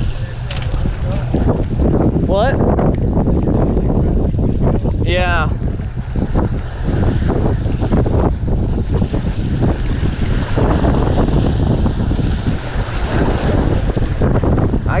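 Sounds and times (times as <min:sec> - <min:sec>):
waves breaking against rocks: 0:00.0 - 0:15.0
wind buffeting microphone: 0:00.0 - 0:15.0.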